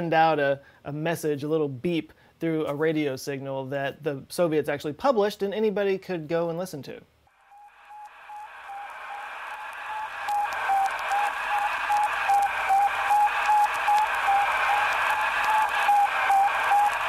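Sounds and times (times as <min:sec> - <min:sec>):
radio hiss: 0:07.5 - 0:17.0.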